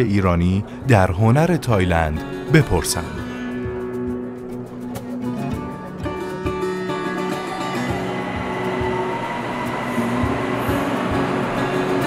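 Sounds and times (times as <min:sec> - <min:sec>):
electric train rumbling past: 0:01.0 - 0:12.0.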